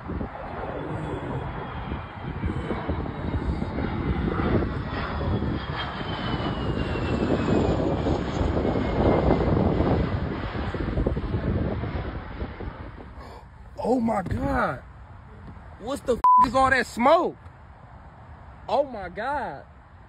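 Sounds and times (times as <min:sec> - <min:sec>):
jet engine rumble: 0:00.0 - 0:20.0.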